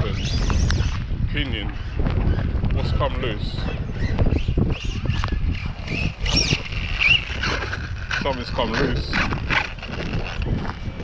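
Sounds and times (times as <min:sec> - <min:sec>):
wind rumble on microphone: 0:00.0 - 0:11.0
toy truck drivetrain squeaking: 0:04.0 - 0:10.8.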